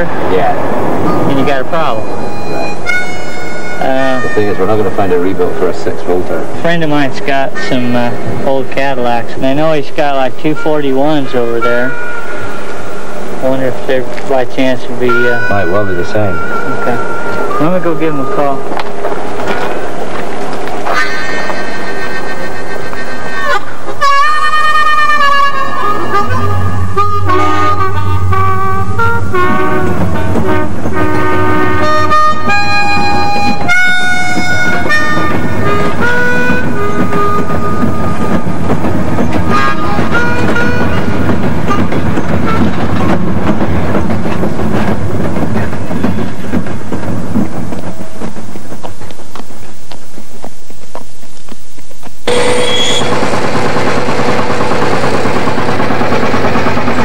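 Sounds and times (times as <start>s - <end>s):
melody of wavering notes: 0.0s - 5.8s, 14.9s - 18.8s, 23.4s - 38.6s
freight train rumbling past: 0.0s - 57.0s.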